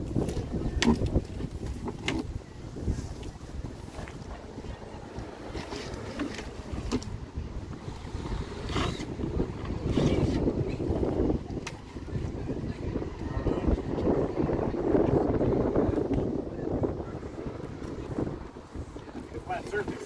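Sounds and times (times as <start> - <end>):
wind rumbling on microphone: 0.0 - 20.0.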